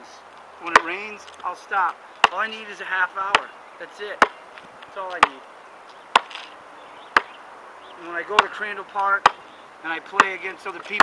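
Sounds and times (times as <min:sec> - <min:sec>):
basketball bouncing: 0:10.1 - 0:11.0.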